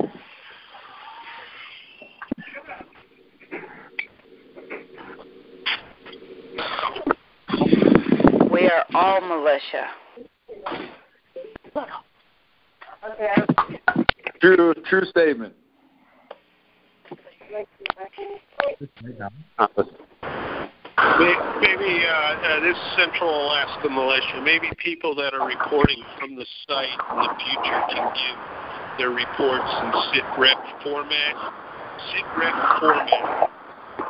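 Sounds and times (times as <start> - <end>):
steady phone line hum: 0.0 - 15.3, 20.1 - 34.0.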